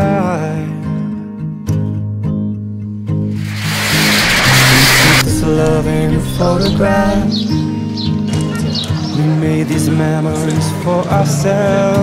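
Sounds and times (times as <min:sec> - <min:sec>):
rising hiss: 0:03.4 - 0:07.9
background song: 0:03.5 - 0:12.0.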